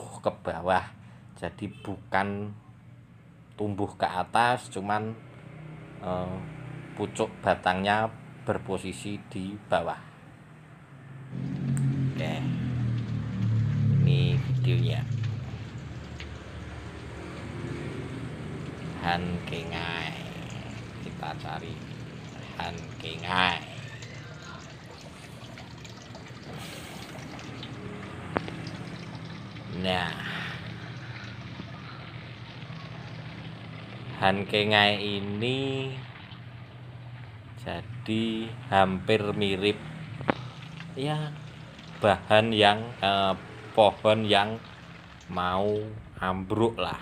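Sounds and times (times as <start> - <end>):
faint outdoor background noise: 0.0 - 47.0
low engine hum: 10.4 - 47.0
distant motor drone: 11.1 - 46.5.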